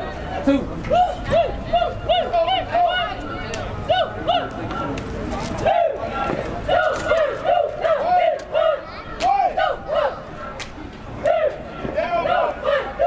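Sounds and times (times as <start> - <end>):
group shouting a chant: 5.6 - 10.3, 11.2 - 13.0.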